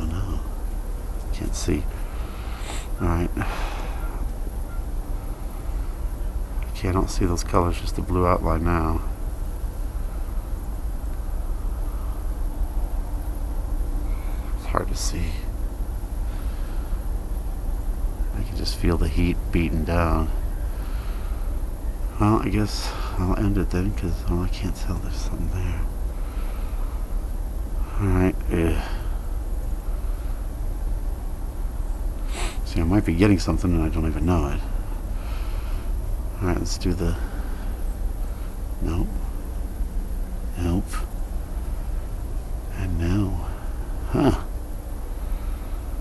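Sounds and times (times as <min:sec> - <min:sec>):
low rumble with faint hiss: 0:00.0 - 0:46.0.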